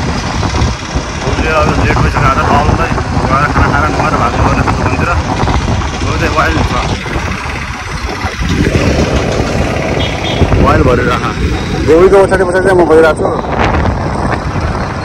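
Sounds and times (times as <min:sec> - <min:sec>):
motorbike engine and road noise: 0:00.0 - 0:15.0
wind buffeting microphone: 0:00.0 - 0:15.0.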